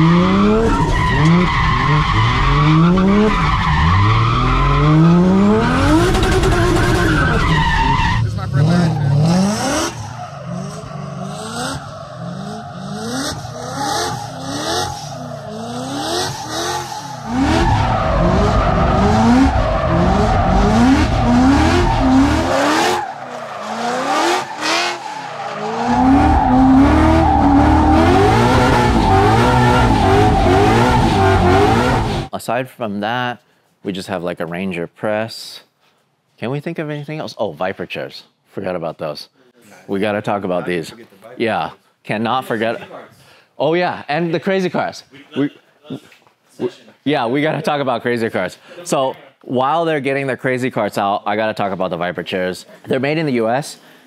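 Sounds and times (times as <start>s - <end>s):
car engine revving hard: 0.0s - 7.5s, 8.2s - 32.3s
tyres skidding and squealing: 0.0s - 32.3s.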